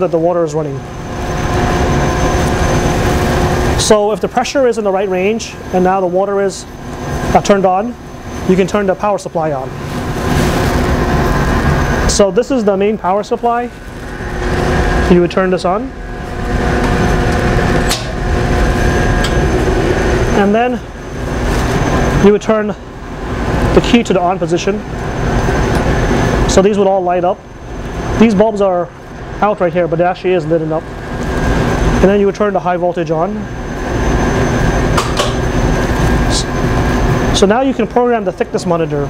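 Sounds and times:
low machine hum: 0.0s - 39.0s
steady tones: 0.0s - 39.0s.

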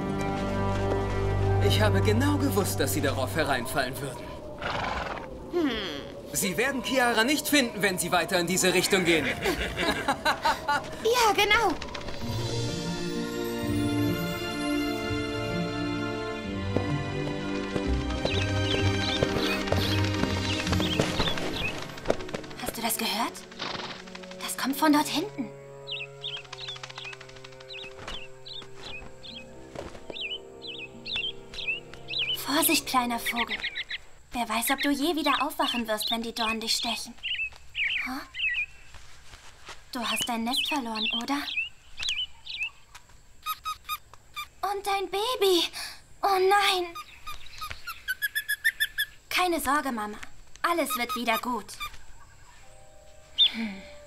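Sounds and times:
soft music with held chords: 0.0s - 3.4s, 12.3s - 22.6s, 24.1s - 33.1s, 52.4s - 54.0s
cartoon bird low vocal: 5.5s - 6.3s
small bird chirping: 18.2s - 22.0s, 24.2s - 39.0s, 40.0s - 45.6s, 46.2s - 53.7s.

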